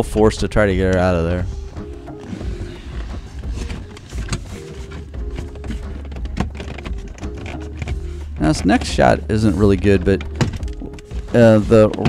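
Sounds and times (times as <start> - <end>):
plastic trim panel clicking: 2.1 - 8.9.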